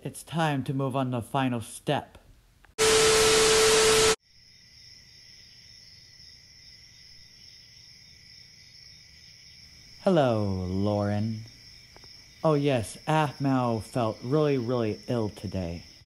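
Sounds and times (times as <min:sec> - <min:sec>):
crickets chirping: 0:04.2 - 0:16.0.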